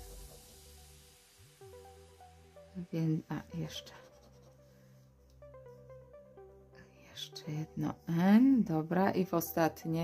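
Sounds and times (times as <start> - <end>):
quiet background music: 0.0 - 10.0.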